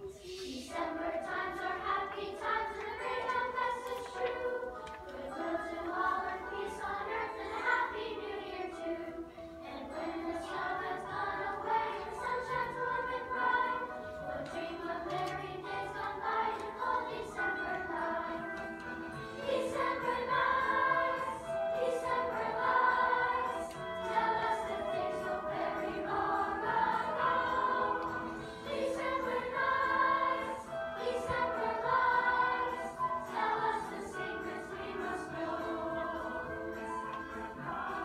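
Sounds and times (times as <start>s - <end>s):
choir singing: 0.0s - 38.0s.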